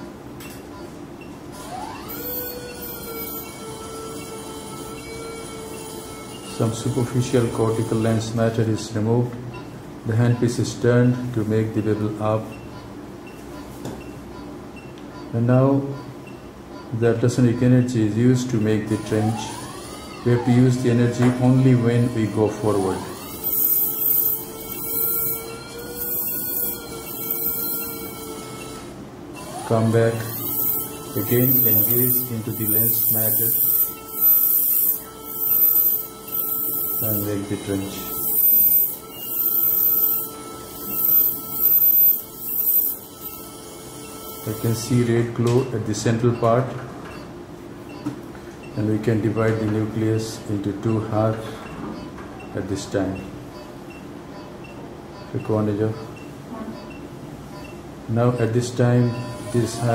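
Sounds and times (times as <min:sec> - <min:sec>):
rising machine tone: 0:01.6 - 0:07.8, 0:18.9 - 0:28.8, 0:29.4 - 0:44.7
pulsing high hiss: 0:30.4 - 0:43.4.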